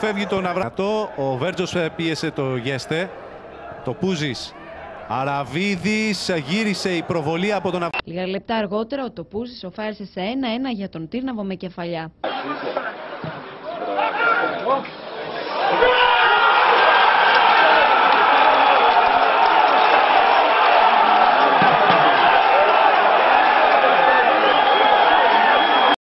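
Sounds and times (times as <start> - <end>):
football crowd cheering: 0.0 - 8.0, 12.2 - 26.0.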